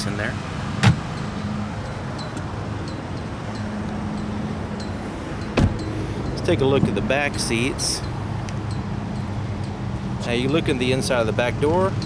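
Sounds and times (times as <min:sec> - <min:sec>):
car door shutting: 0:00.8 - 0:01.1, 0:05.5 - 0:05.8.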